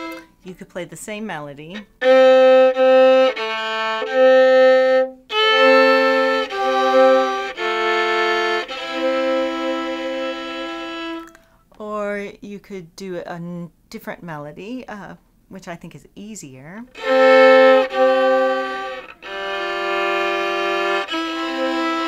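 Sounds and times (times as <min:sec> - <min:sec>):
bowed fiddle double stops: 0:17.0 - 0:22.0.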